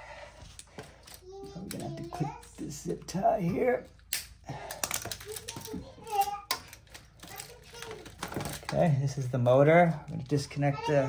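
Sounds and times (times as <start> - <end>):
plastic connectors clicking and rattling: 4.0 - 8.9.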